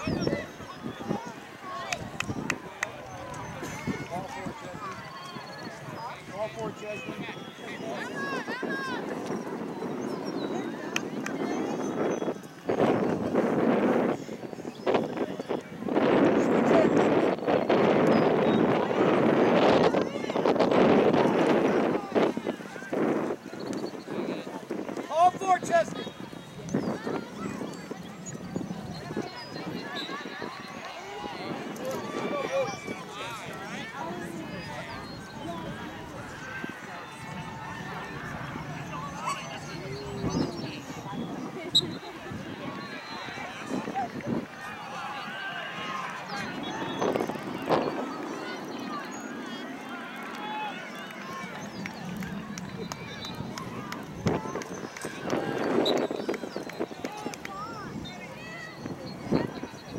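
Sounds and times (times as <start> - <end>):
outdoor background noise: 0.0 - 59.9.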